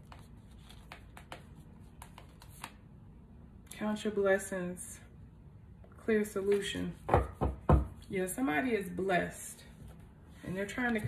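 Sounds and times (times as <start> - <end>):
cards being leafed through: 0.0 - 2.8
woman speaking: 3.7 - 5.1, 6.0 - 7.1, 8.1 - 9.8, 10.4 - 11.0.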